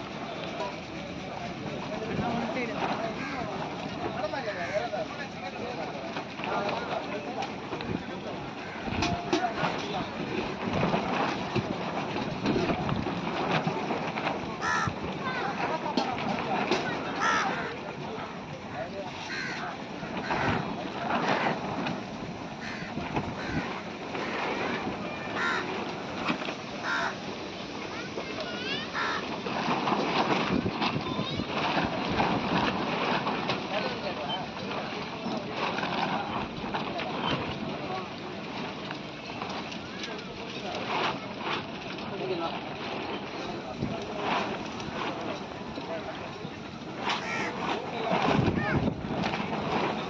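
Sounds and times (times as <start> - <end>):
people chattering: 0.0 - 50.0
wind or surf noise: 0.0 - 50.0
crow cawing: 14.6 - 15.4, 17.2 - 17.7, 19.3 - 19.6, 22.6 - 23.7, 25.4 - 25.7, 26.8 - 27.2, 29.0 - 29.2, 47.2 - 47.6.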